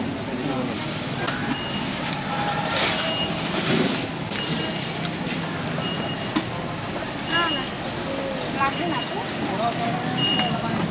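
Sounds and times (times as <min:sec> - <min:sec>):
roadside traffic din: 0:00.0 - 0:10.9.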